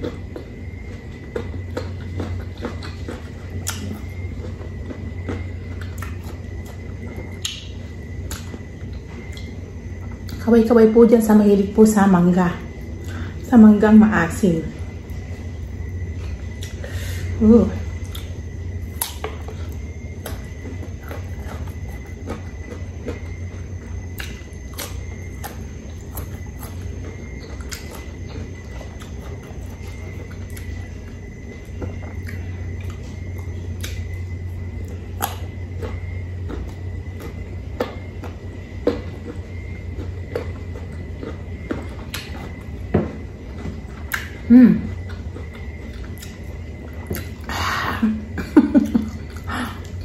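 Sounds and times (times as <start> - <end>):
crunchy chewing of fruit: 0.0 - 50.0
faint high whine: 0.0 - 50.0
steady low hum: 0.0 - 50.0.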